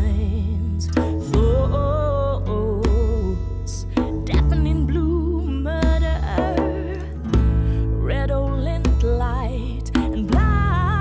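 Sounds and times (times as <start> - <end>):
strummed acoustic guitar: 0.0 - 11.0
sustained bass notes: 0.0 - 11.0
wordless vocal line: 0.8 - 7.2
djembe hits: 3.9 - 4.9, 5.8 - 7.6.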